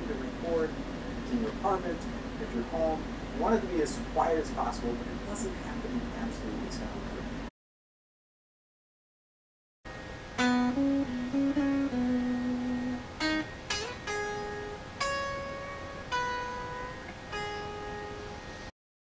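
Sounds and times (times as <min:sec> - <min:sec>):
electric guitar picked notes: 0:10.3 - 0:18.7.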